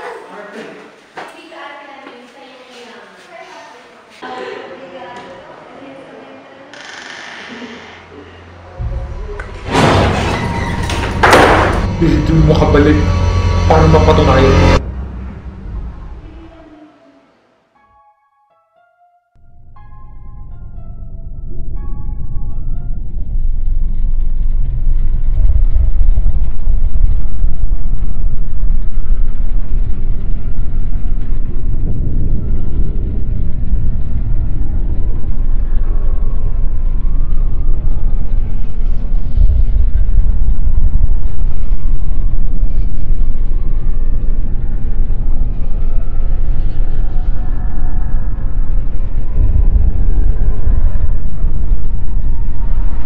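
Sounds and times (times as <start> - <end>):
deep rumbling drone: 6.2 - 17.8, 19.4 - 53.0.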